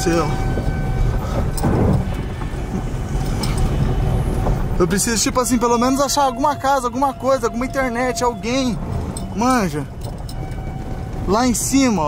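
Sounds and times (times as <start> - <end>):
engine and tyres on dirt track: 0.0 - 12.0.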